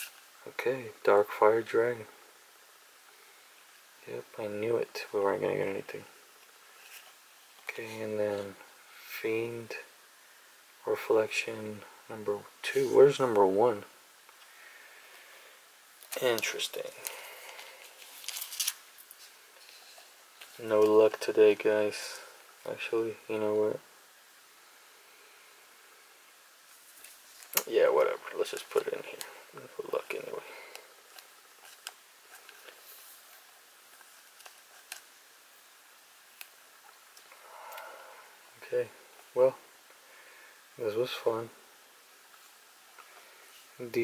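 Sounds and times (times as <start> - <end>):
plastic sleeve crinkling and ticking: 16.0 - 21.7, 26.8 - 35.3.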